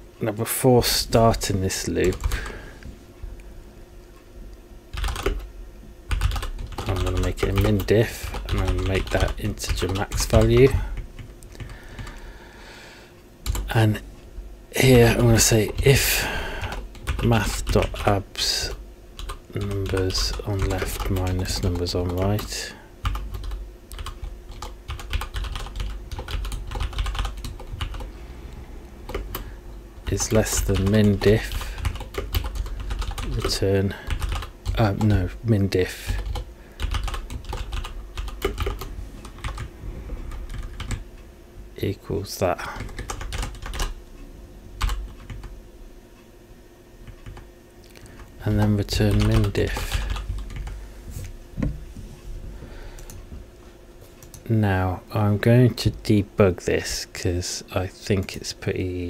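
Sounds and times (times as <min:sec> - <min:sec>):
computer keyboard typing: 0:02.0 - 0:02.6, 0:04.9 - 0:05.5, 0:06.1 - 0:12.2, 0:13.4 - 0:13.7, 0:16.6 - 0:28.1, 0:29.0 - 0:35.2, 0:36.0 - 0:39.7, 0:40.3 - 0:41.0, 0:42.8 - 0:44.0, 0:44.8 - 0:45.5, 0:47.0 - 0:50.8, 0:53.0 - 0:53.2, 0:54.2 - 0:54.5.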